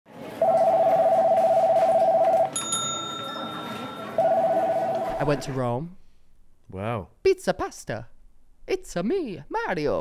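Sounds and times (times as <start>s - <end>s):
electronic telephone ringing: 0.4s - 5.4s
high chime: 2.5s - 5.2s.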